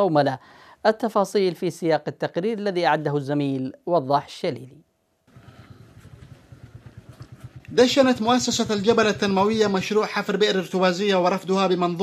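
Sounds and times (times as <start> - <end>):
engine idling: 5.3 - 9.9.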